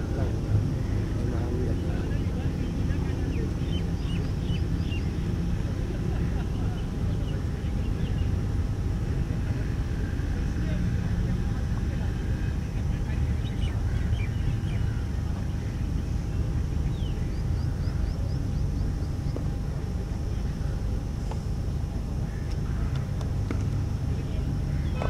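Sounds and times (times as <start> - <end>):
low outdoor rumble: 0.0 - 25.0
murmur of voices: 0.0 - 25.0.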